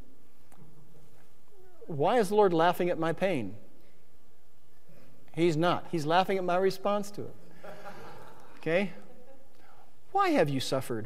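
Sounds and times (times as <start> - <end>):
low background hiss: 0.0 - 11.0
man speaking: 1.8 - 3.7, 5.3 - 7.4, 8.6 - 9.1, 10.1 - 11.0.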